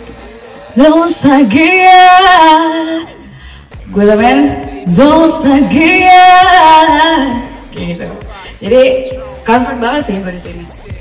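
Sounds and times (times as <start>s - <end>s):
woman singing with reverb: 0.8s - 3.2s, 3.9s - 10.4s.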